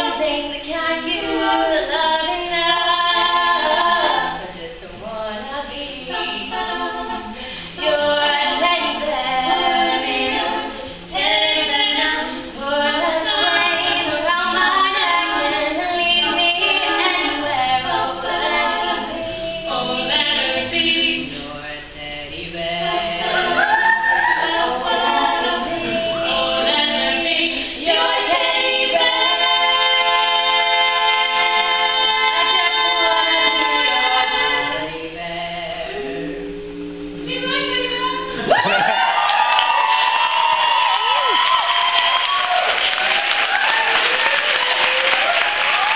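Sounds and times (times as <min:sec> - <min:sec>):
women singing a cappella in harmony: 0:00.0 - 0:43.7.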